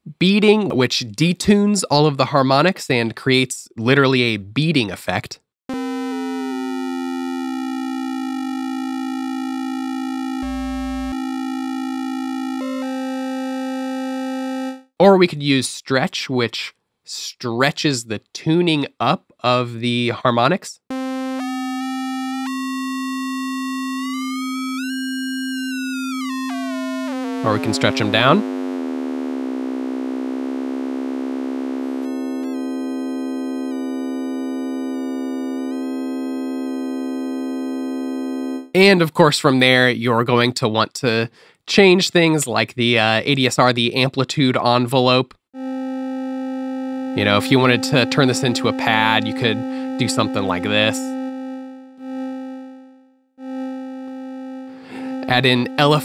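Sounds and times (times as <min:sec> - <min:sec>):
sustained synthesizer tone: 0:10.4 - 0:11.6, 0:27.2 - 0:35.8
held synthesizer note: 0:10.4 - 0:14.8, 0:25.6 - 0:38.7, 0:45.6 - 0:56.0.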